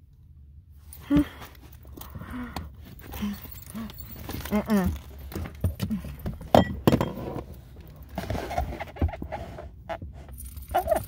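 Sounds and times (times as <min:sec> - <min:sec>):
small metal items jingling: 0:03.1 - 0:06.2, 0:10.3 - 0:11.0.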